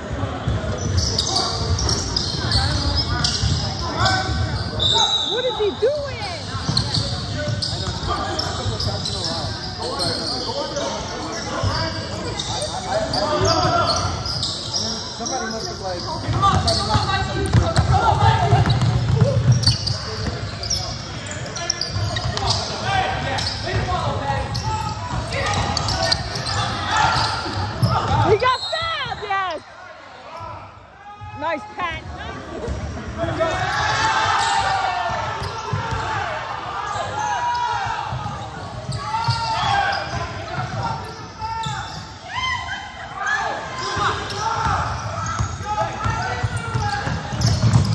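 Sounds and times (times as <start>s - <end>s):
sneakers squeaking: 0.0s - 47.9s.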